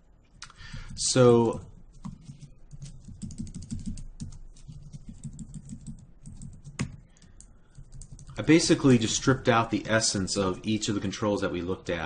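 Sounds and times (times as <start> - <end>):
computer keyboard typing: 0.6 - 9.1.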